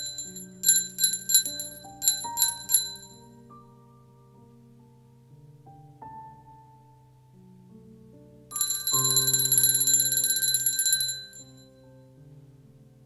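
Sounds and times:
altar bells shaken rapidly: 0:00.0 - 0:03.2, 0:08.5 - 0:11.5
soft keyboard chords: 0:00.0 - 0:13.0.

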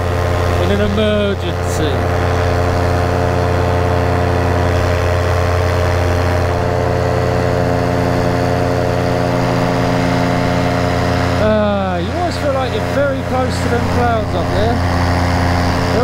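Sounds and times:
paramotor engine and propeller: 0:00.0 - 0:16.0.

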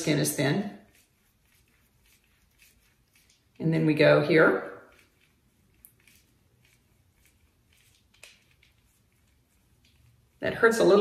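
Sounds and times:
soft rustles: 0:00.0 - 0:04.1, 0:04.8 - 0:11.0
dermaroller clicking on skin: 0:04.8 - 0:10.3.

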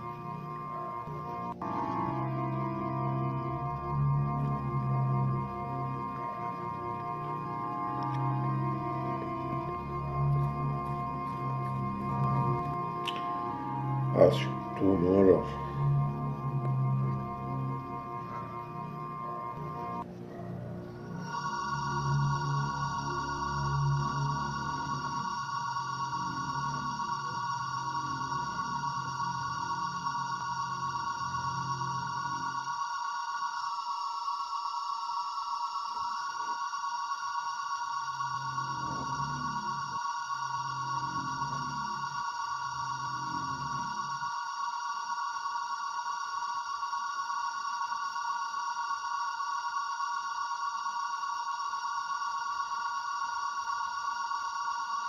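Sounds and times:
electronic drone of high tones: 0:00.0 - 0:20.1, 0:20.8 - 0:55.0
deep pulsing tones: 0:00.0 - 0:32.7.

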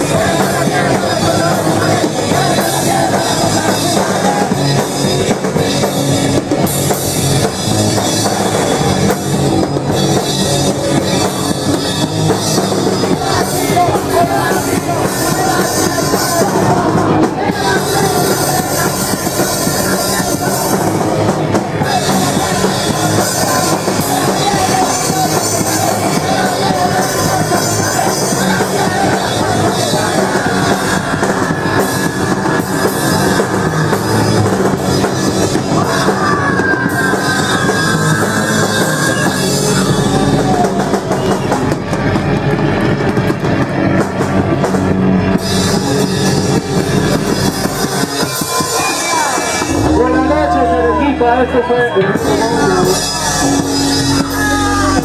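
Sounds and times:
rapid drum hits: 0:00.0 - 0:50.7
punk rock band playing live: 0:00.0 - 0:55.0
singer shouting into microphone: 0:12.8 - 0:41.6, 0:46.3 - 0:55.0.

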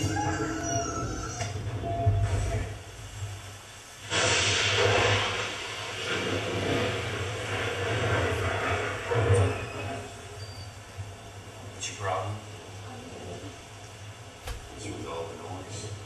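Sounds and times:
steady low hum: 0:01.6 - 0:16.0.

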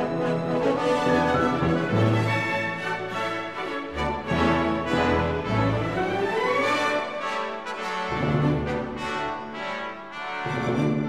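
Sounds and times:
orchestral music with brass: 0:00.0 - 0:11.0.

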